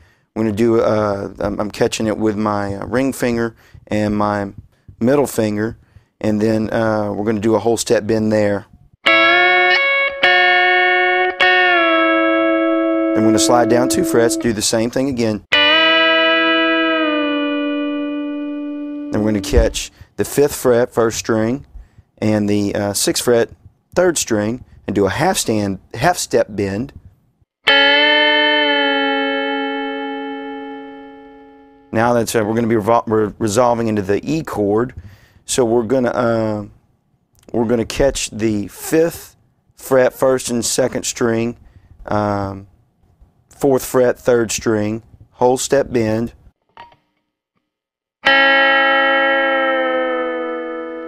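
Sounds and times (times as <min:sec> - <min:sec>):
electric guitar double stop ringing: 0:09.1 - 0:14.6, 0:15.5 - 0:19.9, 0:27.7 - 0:31.9, 0:48.2 - 0:51.0.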